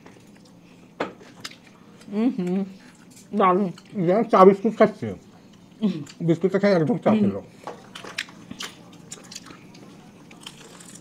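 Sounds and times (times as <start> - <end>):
people biting and chewing food: 7.8 - 11.0.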